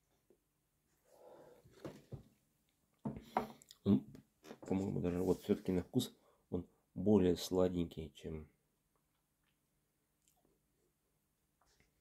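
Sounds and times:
faint breathy sound: 1.0s - 1.8s.

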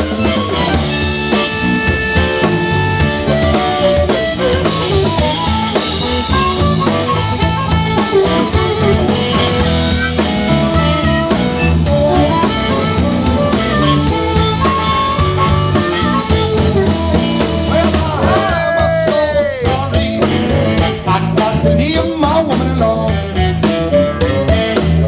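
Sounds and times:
amplified harmonica: 0.0s - 22.0s, 23.1s - 25.0s
drum kit: 0.0s - 25.0s
electric bass: 0.0s - 25.0s.

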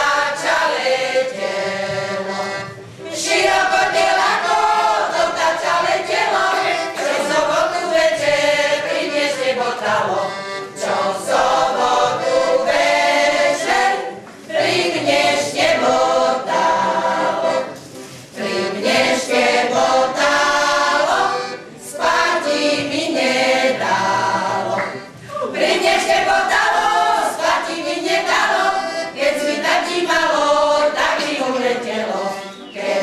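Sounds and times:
women singing folk song together: 0.0s - 33.0s.

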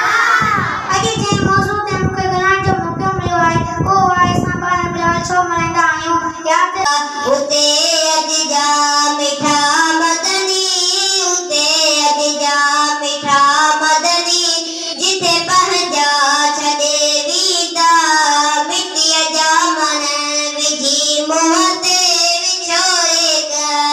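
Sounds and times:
boy singing into a microphone: 0.0s - 23.9s.

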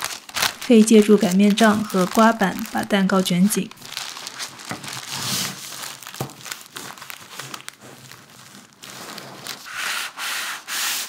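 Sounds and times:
baking paper crinkling: 0.0s - 10.7s.

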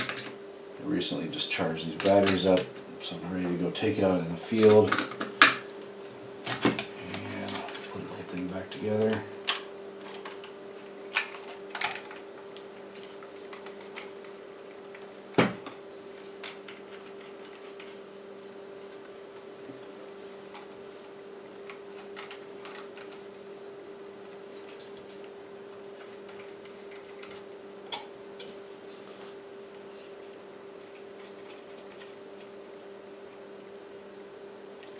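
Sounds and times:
steady low hum: 0.0s - 34.9s.

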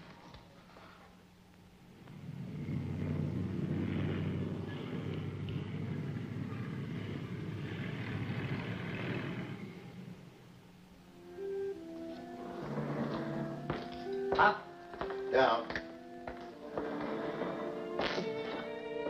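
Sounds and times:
car engines rumbling: 1.9s - 11.0s.

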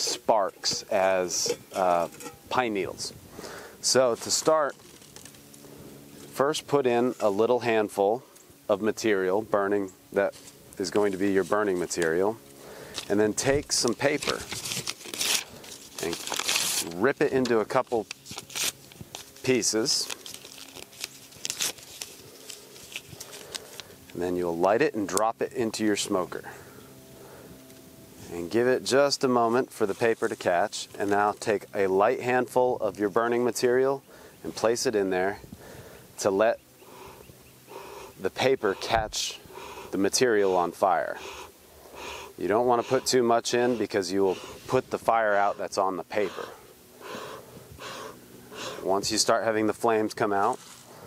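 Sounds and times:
paper rustling: 13.8s - 17.0s, 18.0s - 23.9s
paper tearing: 13.8s - 17.0s, 18.0s - 23.8s.

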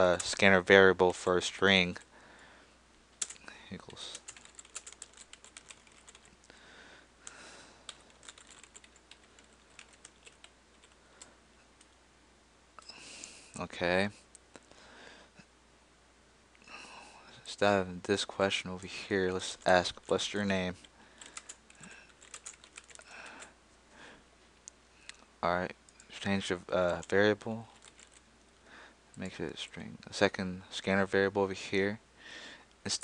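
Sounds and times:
faint keyboard typing: 0.0s - 1.3s, 3.2s - 6.6s, 7.2s - 12.0s, 18.6s - 23.6s, 25.8s - 29.8s.

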